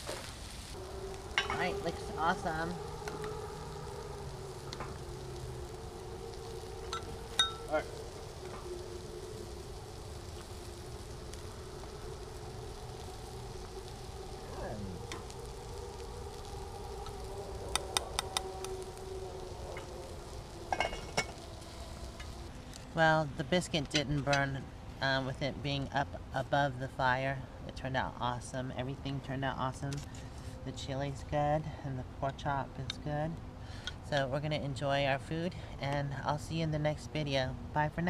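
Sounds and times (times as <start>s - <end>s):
meat sizzling in pans: 0.0s - 23.7s
low steady hum: 0.0s - 38.0s.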